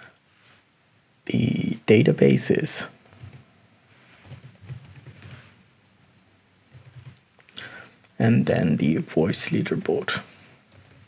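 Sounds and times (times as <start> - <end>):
keyboard typing: 3.0 - 3.4, 4.1 - 5.4, 6.7 - 7.2, 10.7 - 11.0.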